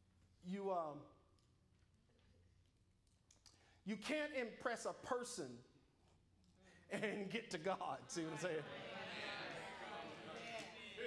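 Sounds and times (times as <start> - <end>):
man's voice: 6.9 - 9.0.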